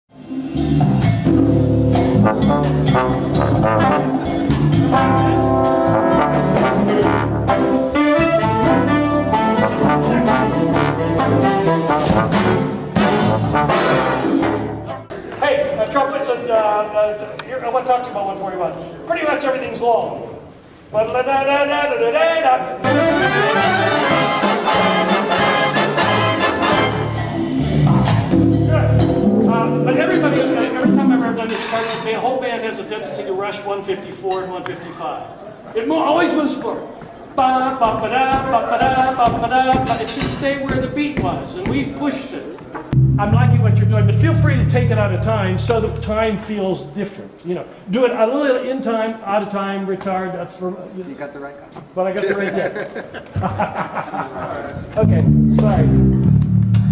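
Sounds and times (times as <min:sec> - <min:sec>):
brass band playing chords: 0:00.1 - 0:15.1, 0:22.8 - 0:31.6, 0:42.9 - 0:46.6, 0:55.0 - 0:56.9
trumpets and trombones: 0:01.6 - 0:15.0, 0:22.8 - 0:30.9
saxophone section: 0:22.8 - 0:27.6
person speaking: 0:43.0 - 0:47.4.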